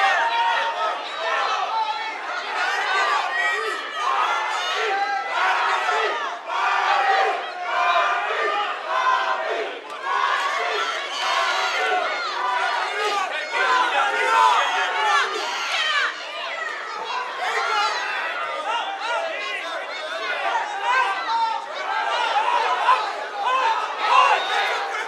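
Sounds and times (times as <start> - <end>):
crowd shouting: 0.0 - 25.0.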